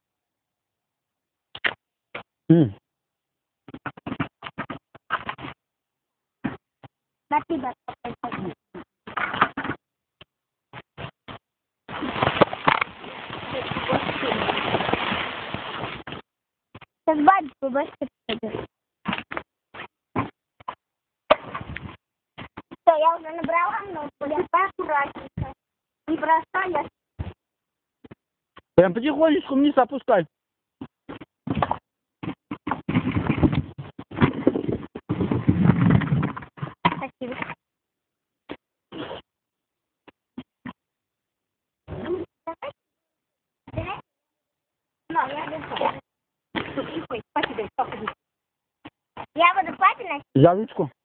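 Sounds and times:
noisy rustle: 11.9 - 16.3
rustling and knocking: 30.8 - 37.6.

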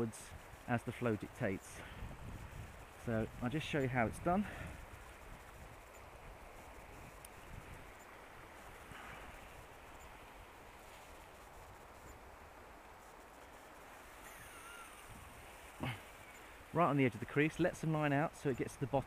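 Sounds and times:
small ticks: 4.6 - 16.7.

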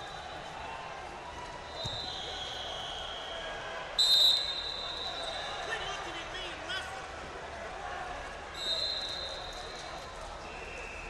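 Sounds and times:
murmur of crowd voices: 0.0 - 11.0
referee whistles blowing: 1.8 - 5.5, 8.6 - 9.6.

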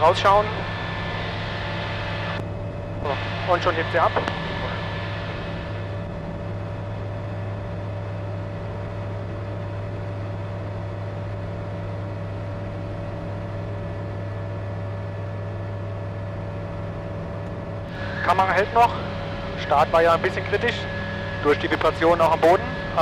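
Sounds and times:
light aircraft engine and propeller: 0.0 - 23.0.

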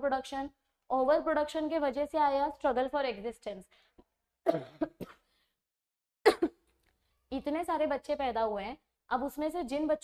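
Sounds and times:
woman clearing her throat: 4.4 - 5.2, 6.3 - 6.6.

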